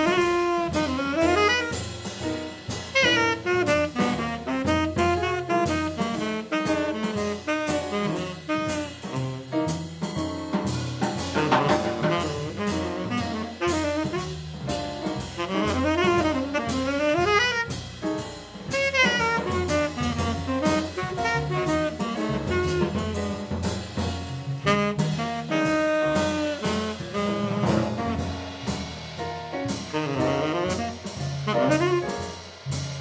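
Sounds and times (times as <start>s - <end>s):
saxophone solo: 0.0s - 2.0s, 2.9s - 9.8s, 11.3s - 17.9s, 18.6s - 23.8s, 24.5s - 28.7s, 29.6s - 32.4s
double bass: 0.0s - 33.0s
drums: 0.0s - 33.0s
piano: 0.0s - 33.0s.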